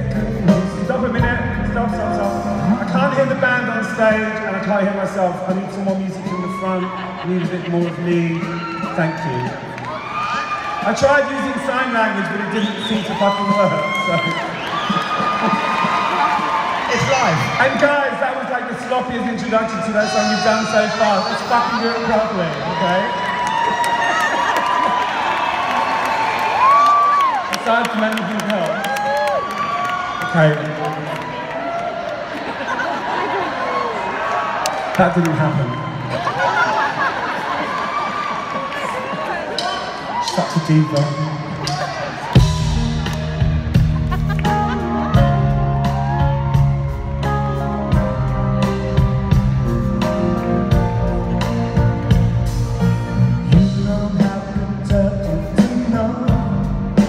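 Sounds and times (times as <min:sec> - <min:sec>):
live band playing: 0:00.0 - 0:17.9, 0:18.5 - 0:24.0, 0:38.8 - 0:57.0
crowd cheering and whooping: 0:05.5 - 0:18.5, 0:19.7 - 0:50.1
drum strikes: 0:40.9 - 0:47.2
man laughing over pa: 0:43.8 - 0:45.3.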